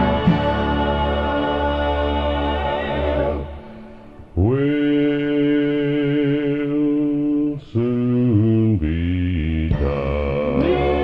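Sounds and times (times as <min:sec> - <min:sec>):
male vocal quartet singing harmony: 0:00.0 - 0:11.0.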